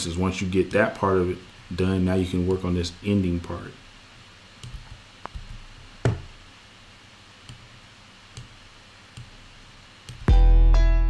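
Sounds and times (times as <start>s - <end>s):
faint room hiss: 0.0s - 10.4s
computer mouse clicks: 4.6s - 6.2s, 7.4s - 7.7s, 8.3s - 9.4s, 10.0s - 10.3s.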